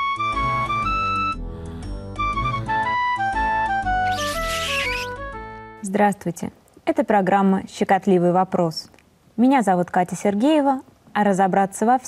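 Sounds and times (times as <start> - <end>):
high hissing swoosh: 4.1 - 5.2.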